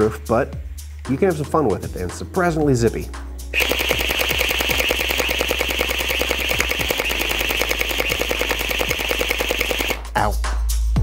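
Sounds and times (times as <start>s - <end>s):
toy blaster firing rapid shots: 3.6s - 10.1s.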